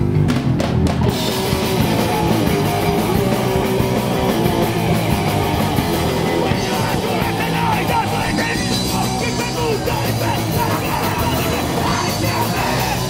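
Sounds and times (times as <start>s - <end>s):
band playing fast punk metal: 0.0s - 13.0s
distorted guitars: 0.0s - 13.0s
drums: 0.0s - 13.0s.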